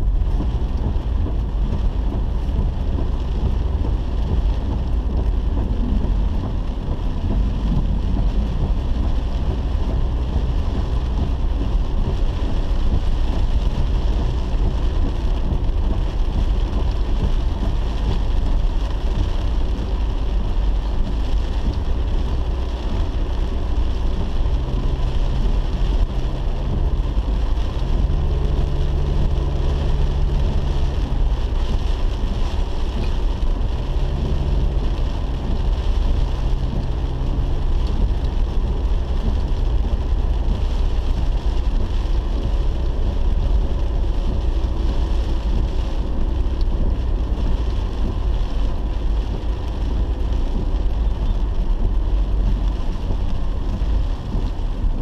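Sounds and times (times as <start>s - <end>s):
engine and tyre rumble: 0.0s - 55.0s
rain hissing on windshield: 0.0s - 55.0s.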